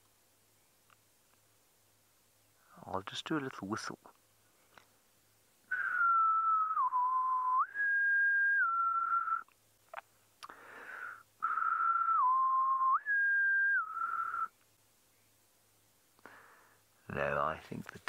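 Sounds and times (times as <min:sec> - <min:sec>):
man whistling a tune: 0:05.7 - 0:09.5, 0:11.1 - 0:14.5.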